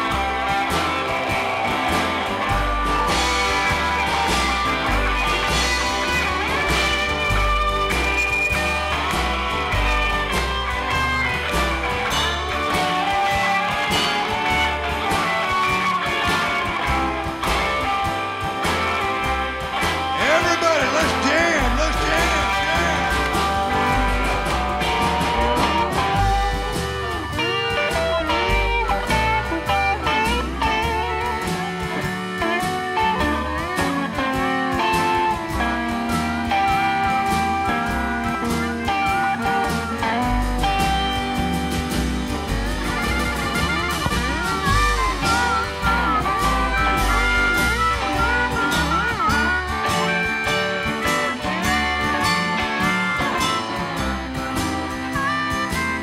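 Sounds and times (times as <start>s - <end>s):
bass line: 0.0s - 56.0s
electric guitar bending notes: 0.0s - 56.0s.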